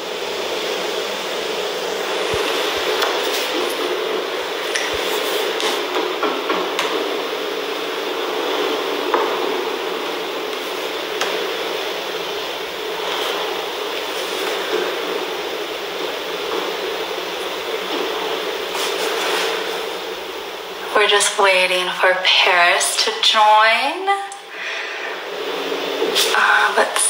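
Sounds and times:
room noise hiss: 0.0 - 27.0.

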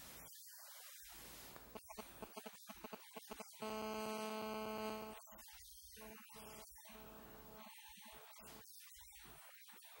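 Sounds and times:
steady pitched hum: 2.0 - 8.6.

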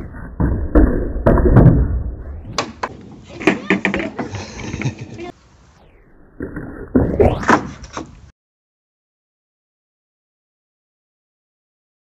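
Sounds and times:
skateboard scraping: 2.2 - 5.4, 7.4 - 8.3
skateboard clattering on wooden decking: 2.6 - 5.0.

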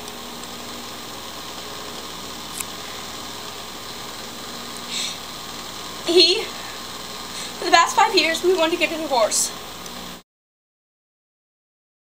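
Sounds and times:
room noise hiss: 0.0 - 10.2.

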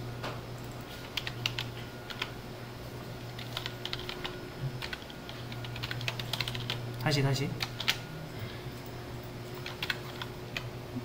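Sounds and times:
steady low hum: 0.0 - 11.0
computer keyboard typing: 0.6 - 2.3, 3.3 - 8.0, 9.4 - 10.7.

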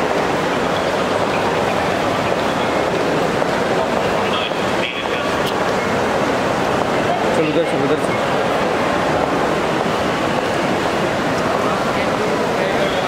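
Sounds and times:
continuous background noise: 0.0 - 13.0
hubbub of many voices: 0.0 - 13.0.

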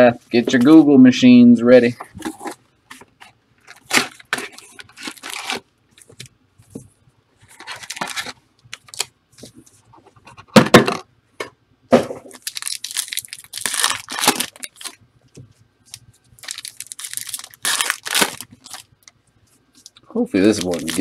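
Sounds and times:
foil wrappers crinkling and tearing: 3.6 - 5.6, 7.5 - 9.1, 12.3 - 15.0, 16.4 - 19.1, 19.8 - 21.0.

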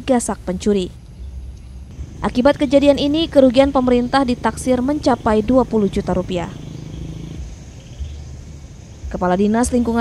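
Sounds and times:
faint low outdoor rumble: 0.0 - 10.0.

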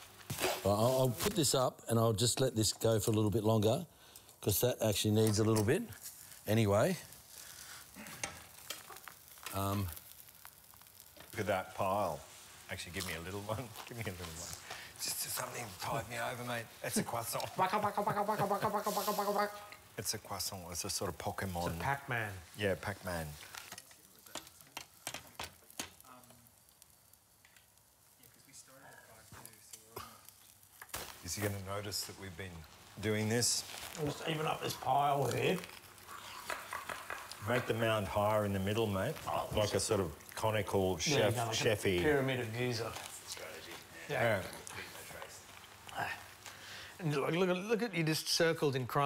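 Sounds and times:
small crackles and clicks: 0.0 - 47.4
meat sizzling on grill: 0.0 - 49.0.

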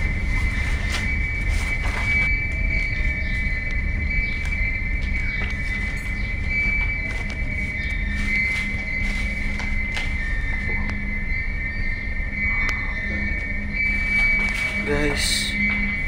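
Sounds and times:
high-pitched whine: 0.0 - 16.0.

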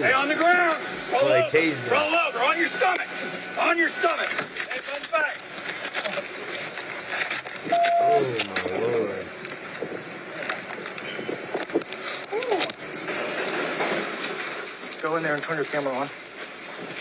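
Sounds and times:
steady background noise: 1.0 - 2.2
indistinct voices: 1.2 - 2.0, 7.9 - 9.3.

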